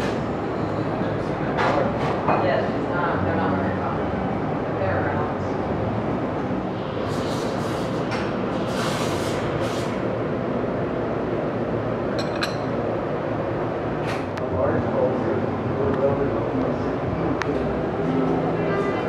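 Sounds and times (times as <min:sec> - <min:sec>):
indistinct cafe voices: 0:00.0 - 0:19.0.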